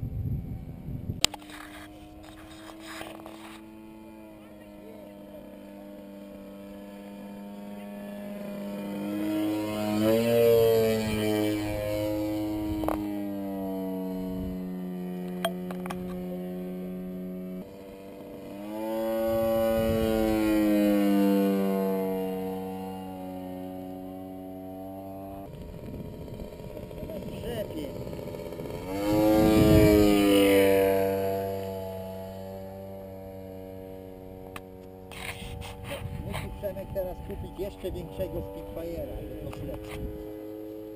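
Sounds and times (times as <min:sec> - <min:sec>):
model airplane engine droning: 0:00.0 - 0:40.9.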